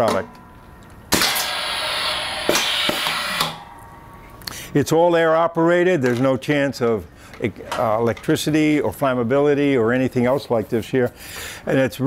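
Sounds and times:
compressed air hissing: 1.2 - 3.6.

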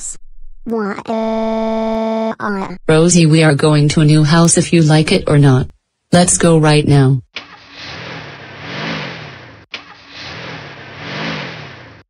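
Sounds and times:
car engine starting and revving: 7.6 - 12.0.

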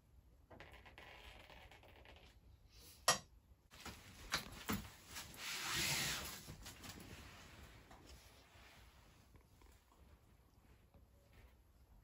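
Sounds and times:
sheet rustling swish: 3.8 - 7.9.

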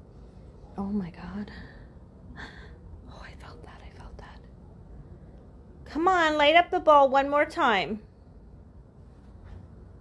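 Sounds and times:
woman whispering: 0.8 - 1.9, 3.0 - 4.6.

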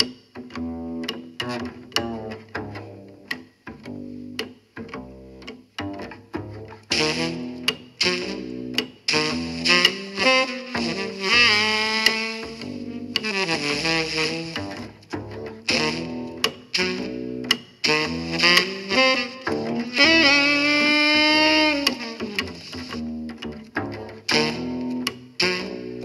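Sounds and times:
instrumental music with horn lead: 0.7 - 3.1, 6.4 - 26.0.

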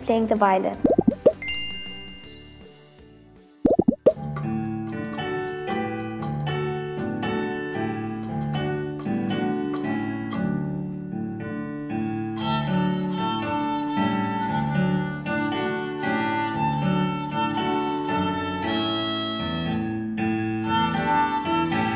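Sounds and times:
pop transition sound effect: 0.8 - 2.1, 3.7 - 4.2
piano accompaniment: 0.8 - 2.7, 3.7 - 21.9.

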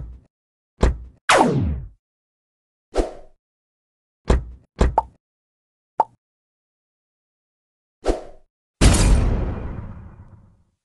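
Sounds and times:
explosion burst with rumble: 8.8 - 10.6.

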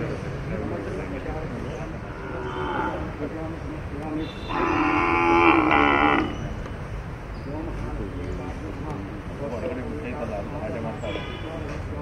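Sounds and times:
cow mooing: 2.2 - 3.1, 4.5 - 6.4.

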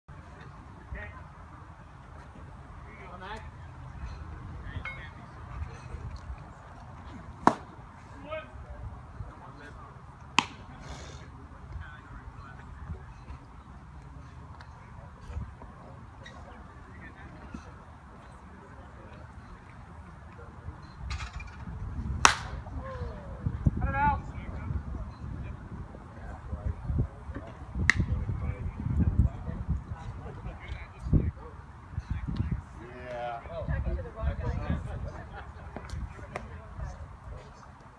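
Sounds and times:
faint scattered voices: 0.1 - 37.9
baseball smacking into glove: 7.4 - 7.7, 10.4 - 10.6, 22.2 - 22.6
wind rumble on microphone: 20.9 - 32.8, 33.5 - 37.6.

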